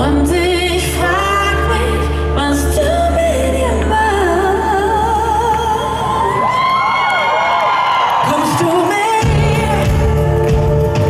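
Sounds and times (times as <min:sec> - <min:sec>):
woman singing with vibrato: 0:00.0 - 0:06.5, 0:08.2 - 0:11.0
live pop band: 0:00.0 - 0:11.0.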